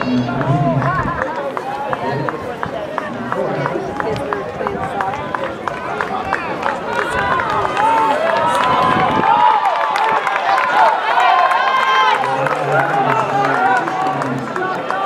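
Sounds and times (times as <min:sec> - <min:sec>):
spectators shouting encouragement: 0:05.6 - 0:15.0.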